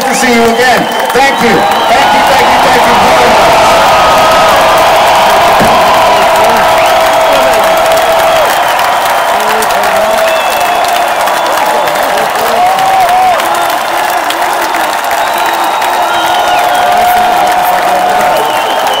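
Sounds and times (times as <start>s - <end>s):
crowd cheering and applauding: 0.0s - 19.0s
long held shouts: 1.4s - 19.0s.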